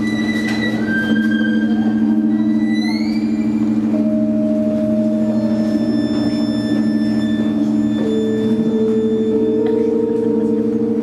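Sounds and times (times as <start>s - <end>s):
bowed violin note: 0.0s - 11.0s
ringing low drone: 0.0s - 11.0s.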